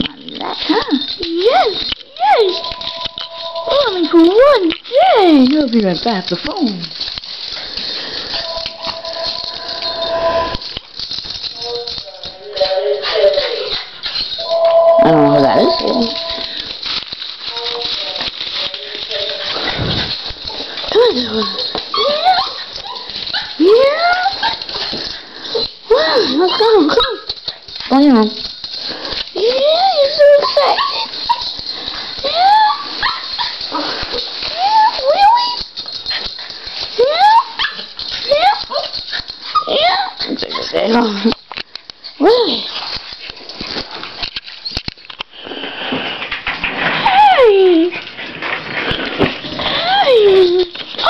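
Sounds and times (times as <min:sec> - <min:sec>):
dog whining: 0:00.3 - 0:05.4, 0:08.4 - 0:16.7, 0:17.4 - 0:28.6, 0:29.4 - 0:41.2, 0:47.0 - 0:48.0, 0:48.8 - 0:51.0.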